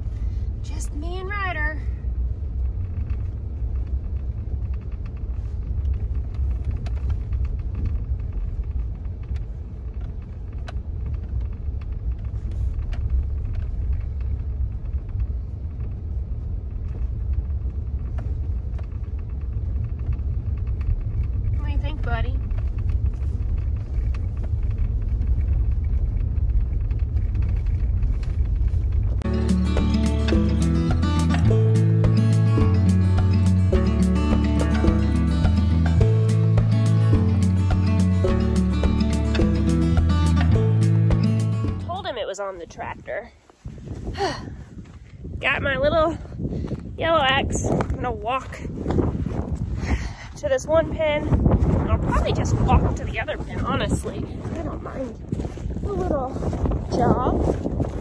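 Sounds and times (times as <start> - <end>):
truck driving rumble: 0.0 - 58.0
high whine: 29.0 - 42.6
music: 29.2 - 42.1.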